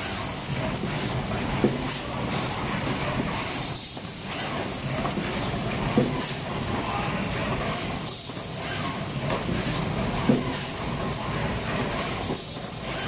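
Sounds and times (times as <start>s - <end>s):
machine hiss: 12.3s - 13.0s.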